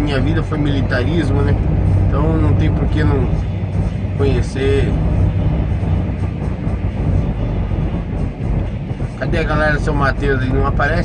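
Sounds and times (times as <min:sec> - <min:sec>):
music from radio: 0:00.0 - 0:11.0
truck engine rumble: 0:00.0 - 0:11.0.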